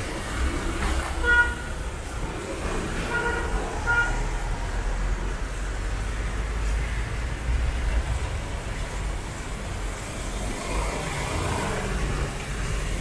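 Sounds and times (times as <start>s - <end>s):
street traffic rumbling: 0.0s - 13.0s
vehicle horn tooting: 1.2s - 1.8s, 3.1s - 4.2s.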